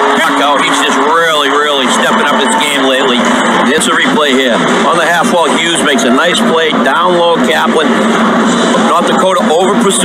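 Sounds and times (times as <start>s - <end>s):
crowd cheering: 0.0s - 10.0s
excited sports commentary: 0.0s - 10.0s.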